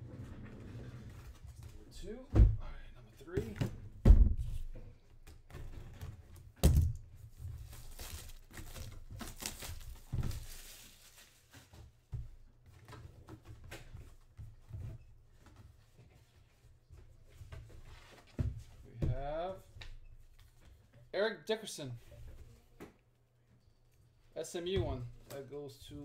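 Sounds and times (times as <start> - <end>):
cardboard rustling: 7.3 - 12.0.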